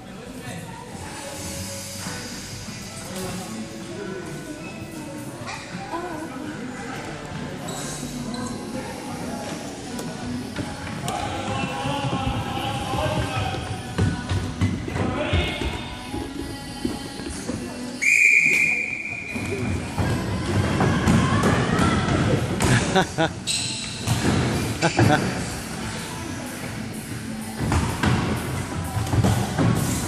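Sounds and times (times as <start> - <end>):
players' voices: 0.0 - 23.5
sports whistle blast: 18.0 - 19.4.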